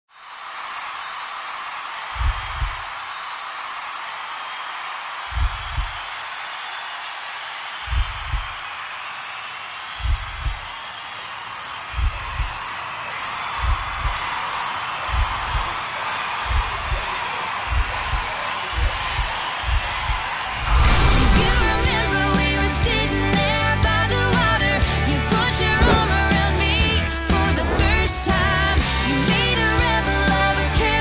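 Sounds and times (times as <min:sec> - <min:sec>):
concert crowd noise: 0:00.1 - 0:31.0
heartbeat thumps: 0:02.2 - 0:02.8, 0:05.3 - 0:06.0, 0:07.9 - 0:08.6, 0:10.0 - 0:10.7, 0:12.0 - 0:12.6, 0:13.6 - 0:14.2, 0:15.1 - 0:15.7, 0:16.4 - 0:22.1, 0:25.6 - 0:28.2.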